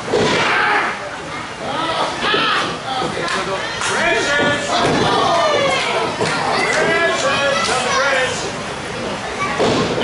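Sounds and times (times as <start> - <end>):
crowd shouting and yelling: 0.0 - 8.6.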